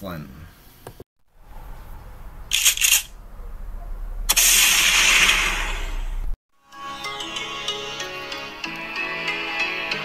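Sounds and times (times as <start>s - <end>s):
low steady hum: 1.3s - 4.7s
sharp cracks: 2.5s - 3.2s, 4.3s - 6.1s
loud hissing burst: 4.3s - 6.3s.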